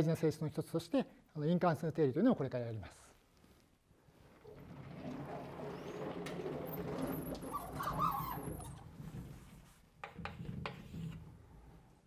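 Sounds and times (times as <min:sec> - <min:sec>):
sliding panels rolling rumble: 0:04.2 - 0:09.7
panel squeaks: 0:05.6 - 0:08.8.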